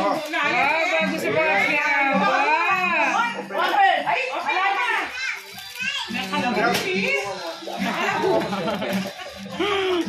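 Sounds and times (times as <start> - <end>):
wrapping paper tearing: 0.0 - 0.7, 5.0 - 10.0
children chattering: 0.0 - 10.0.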